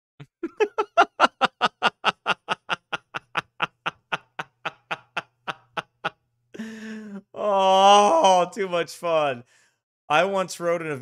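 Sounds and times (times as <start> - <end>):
man laughing hard: 0.2 - 8.2.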